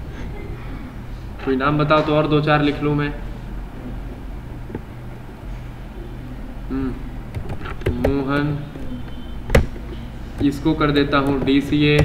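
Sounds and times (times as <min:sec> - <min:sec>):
steady low hum: 0:00.0 - 0:12.0
computer keyboard keystrokes: 0:07.3 - 0:09.8.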